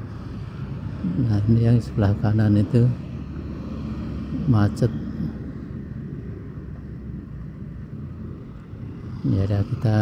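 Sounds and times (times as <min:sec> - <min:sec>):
heavy road traffic rumble: 0:00.0 - 0:10.0
moving vehicle: 0:00.0 - 0:10.0.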